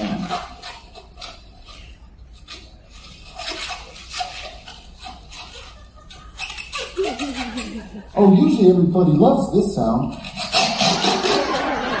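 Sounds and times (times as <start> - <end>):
balloon squeaking and creaking: 0.0 - 8.6, 10.1 - 12.0.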